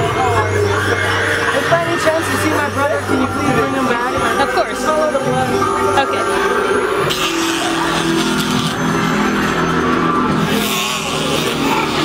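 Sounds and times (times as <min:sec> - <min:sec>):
low droning tones: 0:00.0 - 0:12.0.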